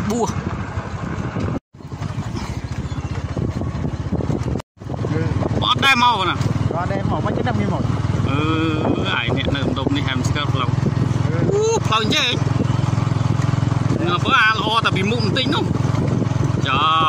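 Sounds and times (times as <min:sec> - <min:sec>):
small motorcycle engine running: 0:00.0 - 0:17.0.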